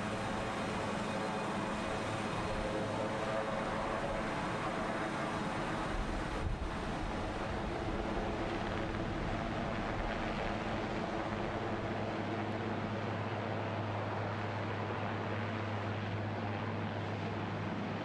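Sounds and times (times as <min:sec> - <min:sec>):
helicopter turbine and rotor noise: 0:00.0 - 0:18.0.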